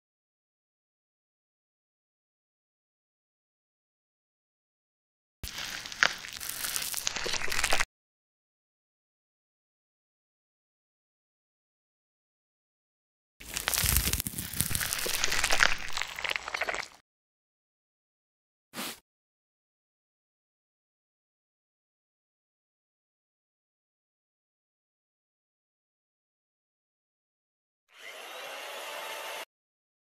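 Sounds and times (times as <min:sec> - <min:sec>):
crunchy crackling scraping: 0:05.4 - 0:07.9, 0:13.4 - 0:17.0
chainsaw buzzing: 0:27.9 - 0:29.4.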